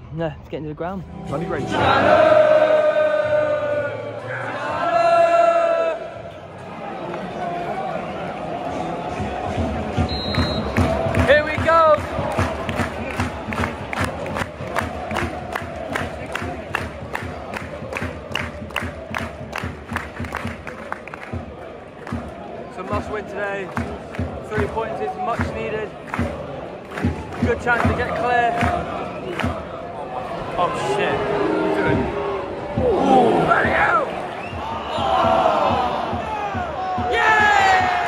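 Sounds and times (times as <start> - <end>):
football crowd chanting: 1.5 - 38.0
crowd clapping in unison: 9.1 - 30.4.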